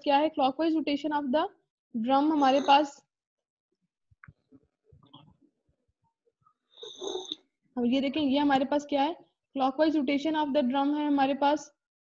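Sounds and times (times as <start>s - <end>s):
person speaking: 2.0s - 3.0s
breathy exhale with whistle: 6.8s - 7.4s.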